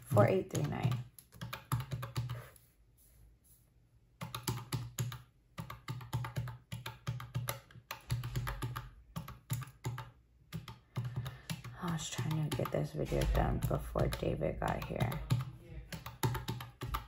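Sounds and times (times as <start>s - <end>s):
calculator keys clicking: 4.2s - 17.0s.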